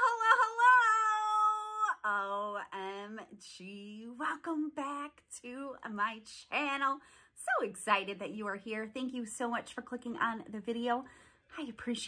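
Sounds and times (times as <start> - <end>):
woman singing a long high note: 0.0 - 3.2.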